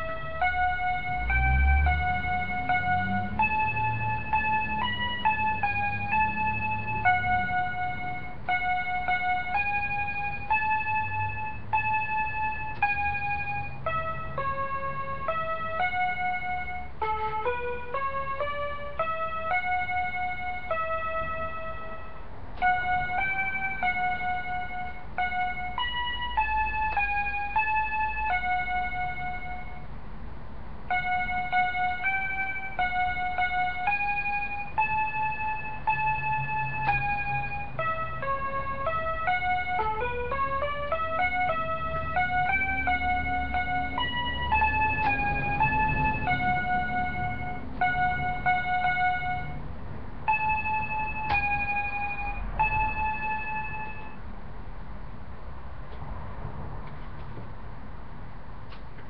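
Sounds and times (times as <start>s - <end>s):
toy keyboard melody: 0.0s - 30.0s, 30.8s - 54.3s.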